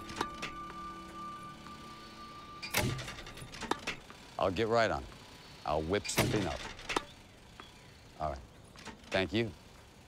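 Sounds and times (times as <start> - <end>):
ball machine whining: 0.0 - 10.0
ball machine pops and knocks: 2.6 - 4.1, 6.1 - 7.2.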